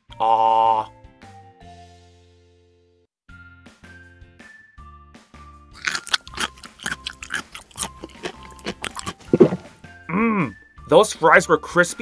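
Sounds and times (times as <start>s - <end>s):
light background music: 0.2s - 12.0s
crunchy chewing of fries: 5.8s - 9.8s.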